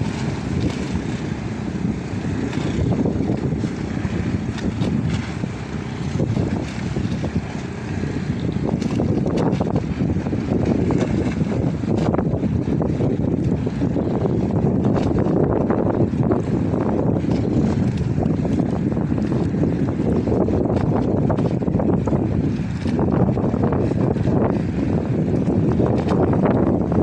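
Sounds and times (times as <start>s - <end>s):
motorboat running: 0.0s - 27.0s
wind buffeting microphone: 0.0s - 27.0s.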